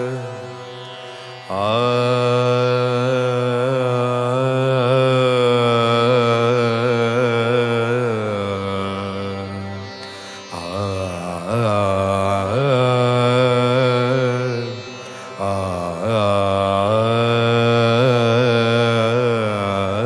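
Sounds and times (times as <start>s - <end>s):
person singing classical song: 0.0s - 20.0s.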